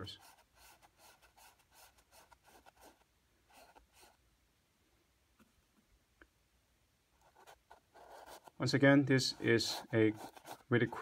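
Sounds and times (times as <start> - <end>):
brush strokes on canvas: 0.0 - 4.2, 7.2 - 11.0.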